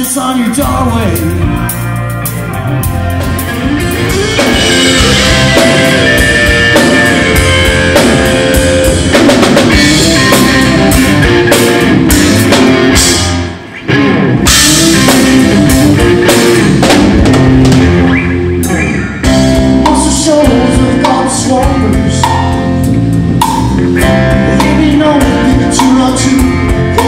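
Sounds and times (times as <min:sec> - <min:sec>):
live rock band playing: 0:00.0 - 0:27.0.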